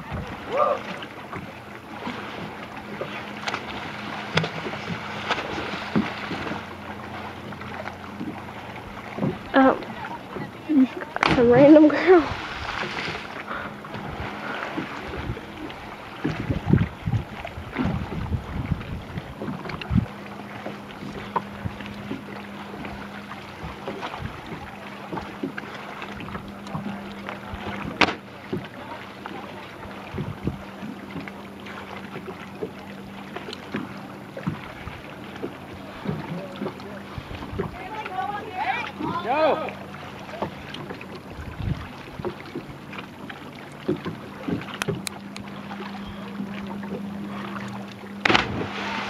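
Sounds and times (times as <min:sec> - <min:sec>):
wind on microphone: 0:00.0 - 0:00.8, 0:11.2 - 0:20.2, 0:23.7 - 0:24.6, 0:30.1 - 0:30.7, 0:41.4 - 0:42.3
steady low hum: 0:00.0 - 0:49.0
water noise: 0:00.0 - 0:49.0.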